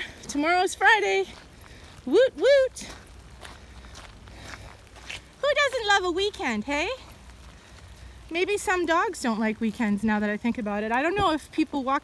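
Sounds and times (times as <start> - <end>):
footsteps on wet gravel: 0.0 - 12.0.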